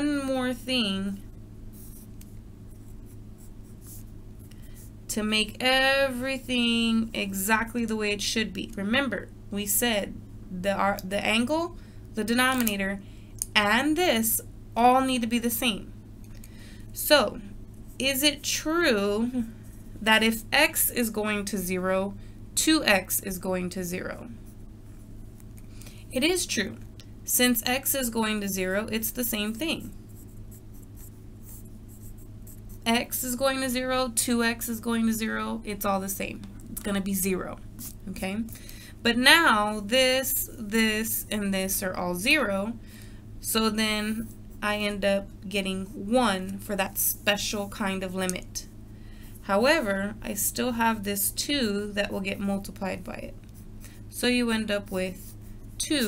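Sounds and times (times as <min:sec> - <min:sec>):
woman's voice: 0:00.0 - 0:01.2, 0:05.1 - 0:15.9, 0:17.0 - 0:24.4, 0:26.1 - 0:30.0, 0:32.8 - 0:42.8, 0:43.4 - 0:48.7, 0:49.4 - 0:53.4, 0:54.1 - 0:56.0
steady low hum: 0:00.0 - 0:56.0
pen scratching on paper: 0:02.7 - 0:04.1, 0:29.2 - 0:33.0.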